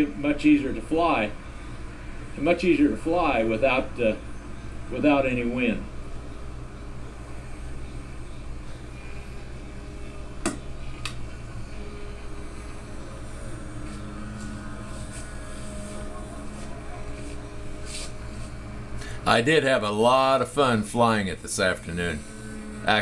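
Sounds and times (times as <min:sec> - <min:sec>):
steady low hum: 0:00.0 - 0:23.0
model plane motor drone: 0:21.8 - 0:23.0.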